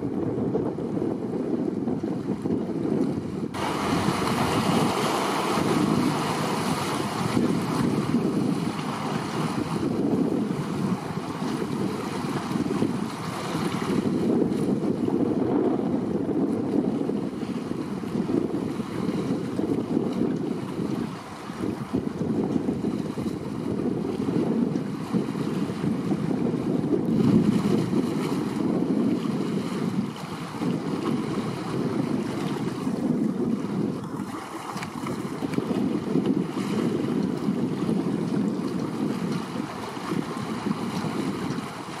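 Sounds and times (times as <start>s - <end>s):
choppy sea water washing: 0.0s - 42.0s
wind gusting on microphone: 0.0s - 42.0s.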